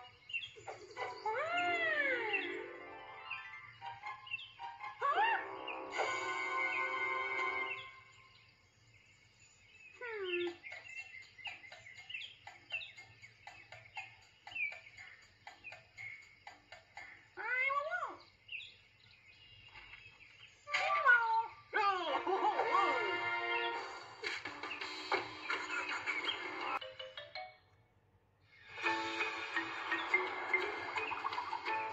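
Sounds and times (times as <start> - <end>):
cartoon music: 0.8 - 8.1, 21.8 - 24.0, 28.8 - 31.9
high-pitched chirps: 9.9 - 17.4.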